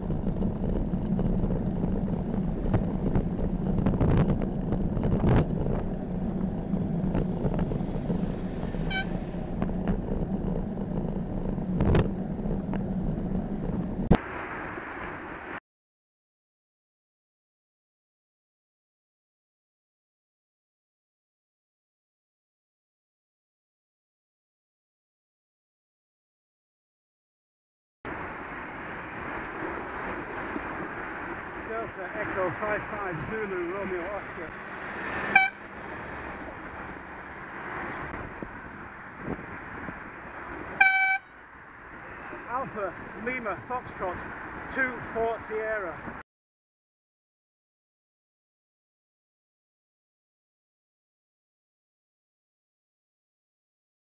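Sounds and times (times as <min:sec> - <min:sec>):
wind and road rumble: 0:00.0 - 0:15.6, 0:28.1 - 0:46.2
short high beep: 0:08.9 - 0:09.2
man speaking: 0:31.7 - 0:34.5, 0:42.5 - 0:46.0.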